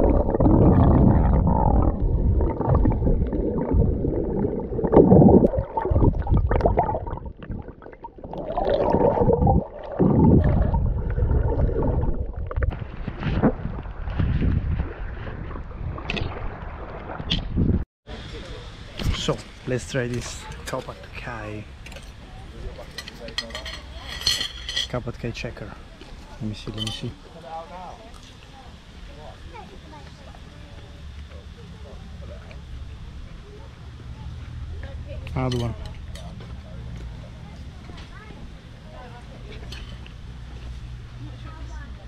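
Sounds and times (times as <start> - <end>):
underwater crackles: 0.0 - 17.7
muffled underwater rumbling: 0.0 - 17.8
cutlery clinking and scraping on plate: 22.8 - 25.0.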